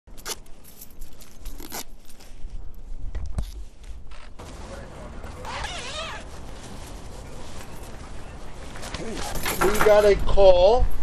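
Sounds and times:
coveralls rustling and crinkling: 0:00.1 - 0:11.0.

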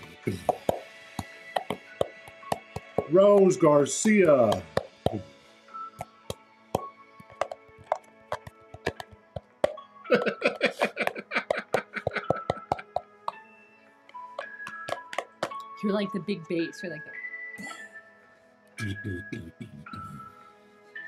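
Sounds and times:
music with held notes: 0:00.0 - 0:21.0
hand drumming on plastic bowl: 0:00.5 - 0:05.2, 0:06.8 - 0:10.4, 0:11.0 - 0:13.4, 0:14.4 - 0:15.6
people laughing: 0:10.1 - 0:13.0.

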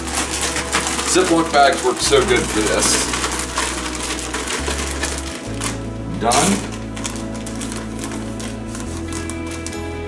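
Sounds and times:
background music with bass line: 0:00.0 - 0:10.0
plastic zipper bag rattling: 0:00.0 - 0:10.0.

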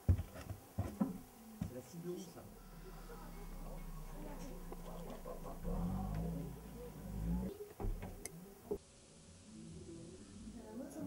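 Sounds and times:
indistinct voices talking: 0:02.2 - 0:08.8
low thumps: 0:02.5 - 0:08.8.

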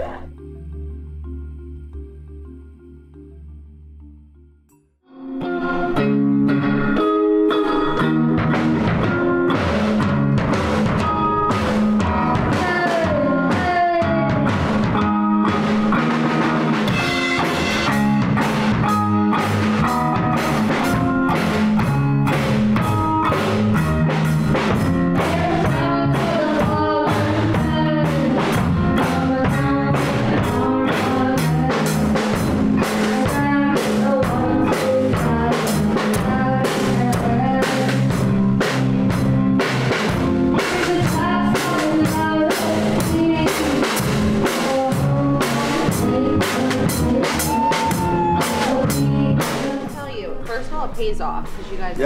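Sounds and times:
live rock band playing: 0:05.1 - 0:52.0
boy singing into a microphone: 0:05.2 - 0:06.4, 0:12.1 - 0:14.6, 0:25.2 - 0:32.1, 0:32.9 - 0:38.1, 0:40.6 - 0:50.0
steady drum beat: 0:08.2 - 0:52.0.

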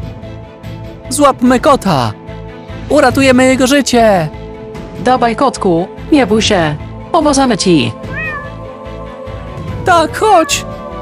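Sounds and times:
background music with held notes: 0:00.0 - 0:11.0
cat meowing: 0:08.0 - 0:08.7, 0:10.2 - 0:10.7.

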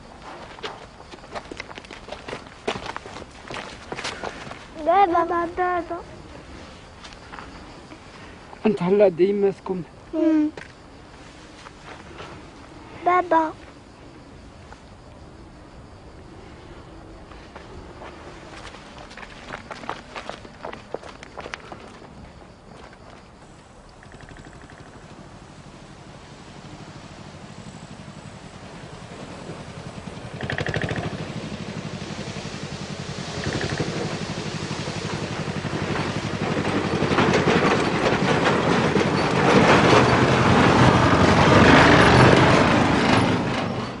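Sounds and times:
vehicle engine approaching: 0:24.0 - 0:44.0.

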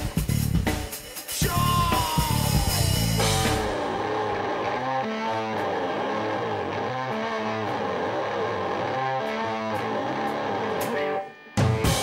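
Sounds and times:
bass line: 0:00.0 - 0:11.2
distorted electric guitar: 0:01.4 - 0:12.0.

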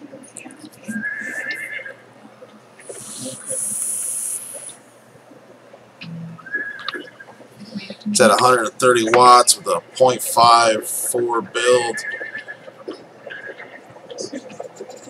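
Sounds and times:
wavering whistles of breath: 0:00.8 - 0:02.0, 0:02.9 - 0:05.0
vape draw hissing: 0:03.0 - 0:04.8.

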